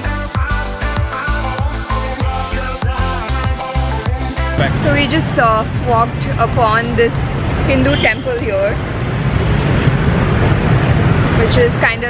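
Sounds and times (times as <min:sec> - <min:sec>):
low rumble of passing vehicles: 0:04.5 - 0:12.0.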